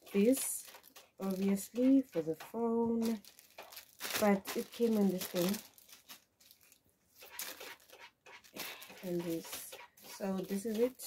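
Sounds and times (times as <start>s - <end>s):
plastic bag rustling: 0.0s - 11.0s.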